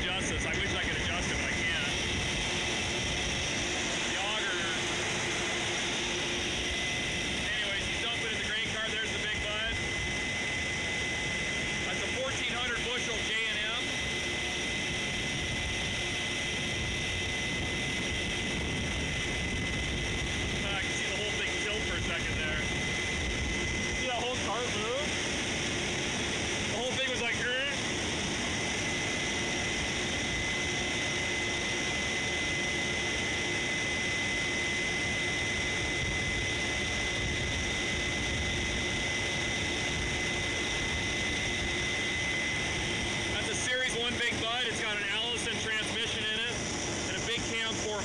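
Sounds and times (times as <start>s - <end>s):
steady high whine: 0.0s - 48.0s.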